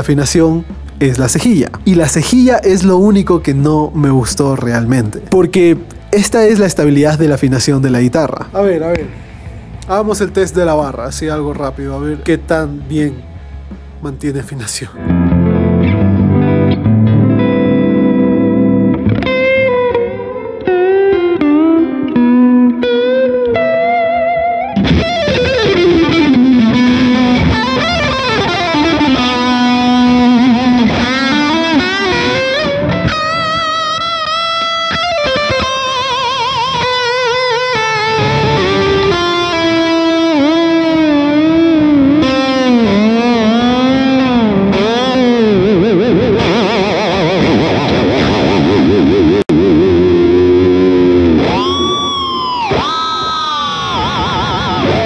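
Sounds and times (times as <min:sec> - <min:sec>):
electric guitar with tremolo: 0:00.0 - 0:55.0.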